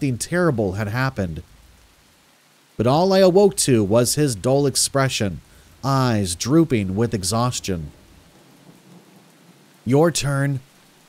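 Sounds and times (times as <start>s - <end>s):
person speaking: 0.0s - 1.5s, 2.8s - 8.1s, 9.8s - 10.7s
steady rain hiss: 0.0s - 11.0s.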